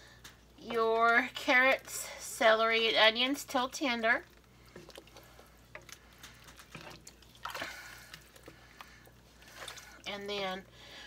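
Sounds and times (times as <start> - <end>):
broth sloshing in a pot: 0.2 - 11.0.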